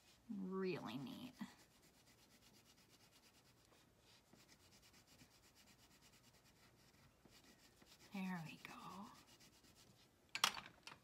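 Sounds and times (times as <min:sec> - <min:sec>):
crayon scribbling on paper: 0:00.0 - 0:10.1.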